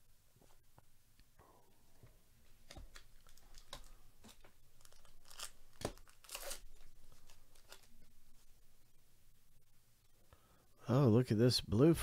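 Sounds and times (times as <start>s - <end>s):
cards being handled: 2.6s - 8.1s
foil pack tearing and crinkling: 3.2s - 7.9s.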